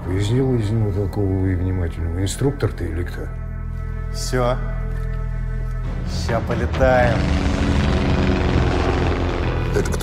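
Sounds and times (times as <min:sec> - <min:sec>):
propeller plane engine running: 0:07.1 - 0:10.0.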